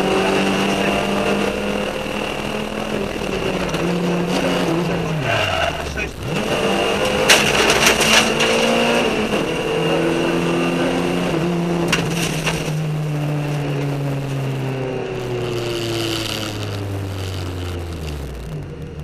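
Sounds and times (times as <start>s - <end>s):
car engine revving: 0.0s - 19.0s.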